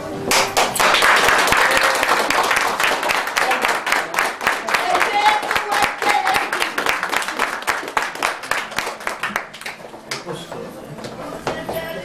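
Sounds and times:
crowd clapping: 0.3 - 10.3.

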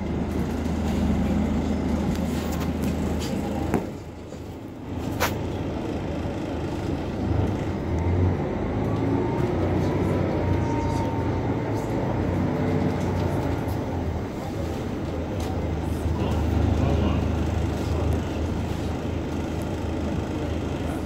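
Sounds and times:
bus engine drone: 0.0 - 21.0.

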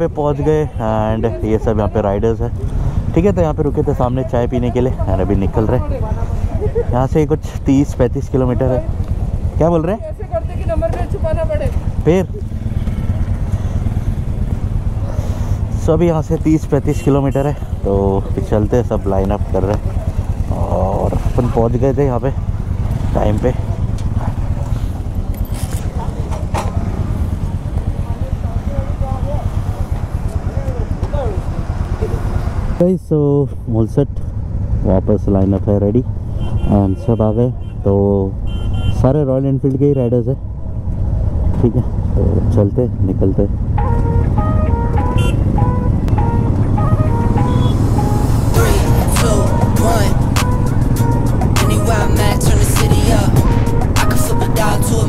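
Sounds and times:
motorcycle engine idling: 0.0 - 36.7
music beat: 43.8 - 55.0
stepped melody music: 43.8 - 55.0
vocal line: 46.9 - 50.7, 51.4 - 55.0.

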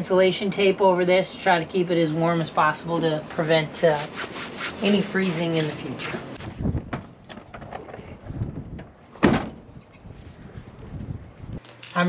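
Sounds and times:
van door shutting: 9.2 - 9.7.

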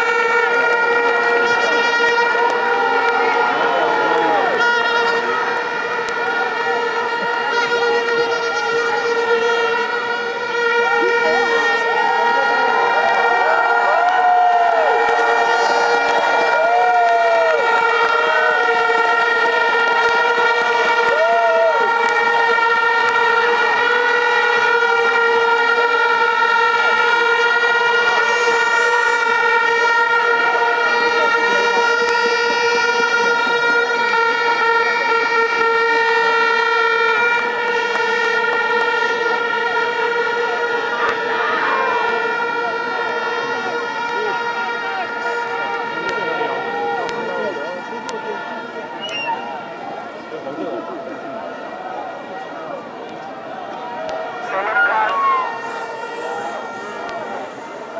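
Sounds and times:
crowd chatter and shouts: 0.0 - 57.9
steady blaring horn: 0.0 - 57.9
swooping horn tones: 0.0 - 57.9.

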